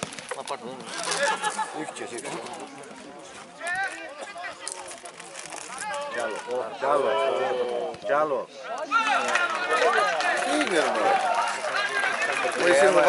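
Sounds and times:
open-air background noise: 0.0s - 13.0s.

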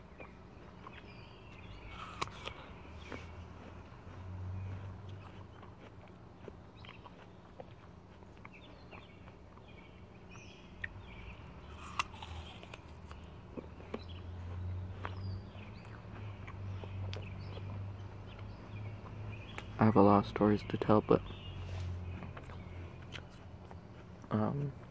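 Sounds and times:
person chewing apple: 0.0s - 24.9s
crisp apple crunches: 0.2s - 9.7s, 10.8s - 15.2s.

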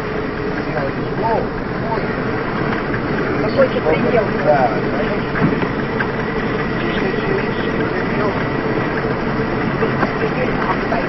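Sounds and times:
car engine: 0.0s - 11.0s
road noise inside car: 0.0s - 11.0s.

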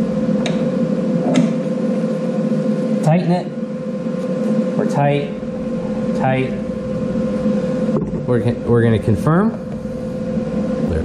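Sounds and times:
welder humming: 0.0s - 11.0s.

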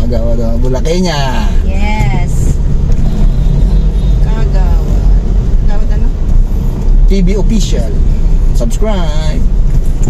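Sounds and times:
car engine rumble: 0.0s - 10.0s
road noise inside car: 0.0s - 10.0s.

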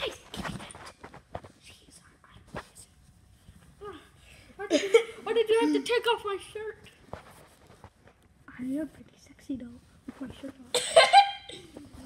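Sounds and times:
plush toys handled: 0.0s - 1.7s.

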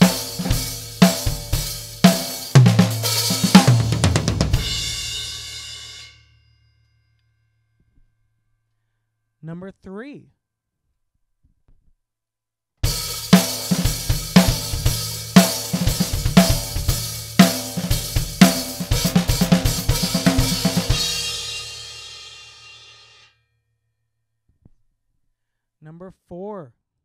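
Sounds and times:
drum kit fill: 0.0s - 6.3s, 12.8s - 23.2s
cymbal ringing: 4.6s - 7.4s, 17.4s - 23.4s.

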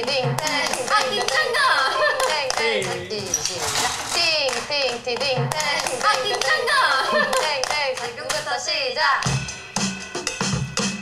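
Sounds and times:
hand claps: 0.3s - 1.5s, 2.2s - 3.0s, 4.4s - 8.5s
young women chanting: 0.4s - 3.1s, 5.5s - 7.9s
women laughing: 1.5s - 2.4s, 7.0s - 7.6s.

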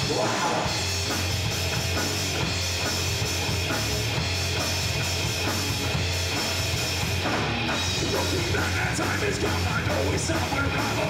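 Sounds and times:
bass guitar: 0.0s - 11.0s
drum kit pounding: 0.0s - 11.0s
electric guitar: 0.0s - 11.0s.

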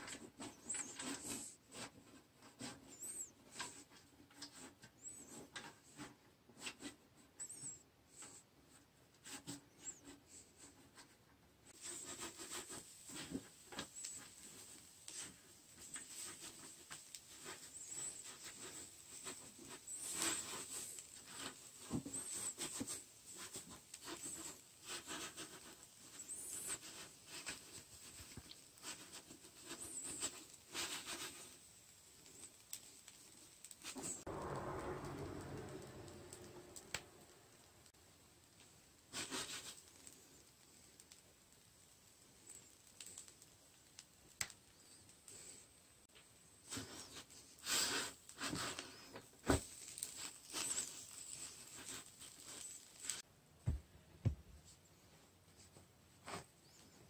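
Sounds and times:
leaves rustling against skillet: 11.8s - 45.9s, 46.5s - 53.3s.

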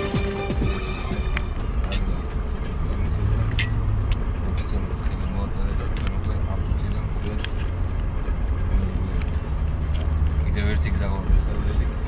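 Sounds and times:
car cabin drone while driving: 0.6s - 12.0s
voices talking: 0.8s - 12.0s.

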